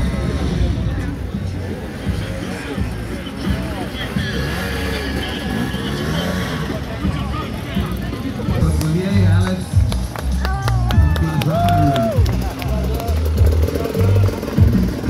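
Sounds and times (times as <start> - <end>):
crowd talking and shouting: 0.0 - 15.0
dirt bike engine running: 0.0 - 15.0.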